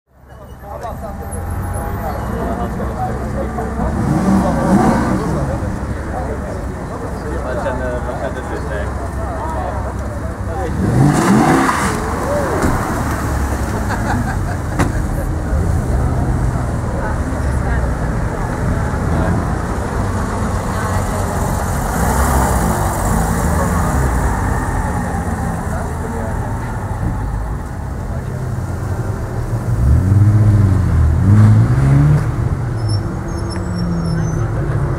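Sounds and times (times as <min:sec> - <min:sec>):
voices: 0:00.1 - 0:34.9
people talking: 0:00.2 - 0:29.5, 0:33.7 - 0:34.9
sports car engines at low revs: 0:03.0 - 0:34.9.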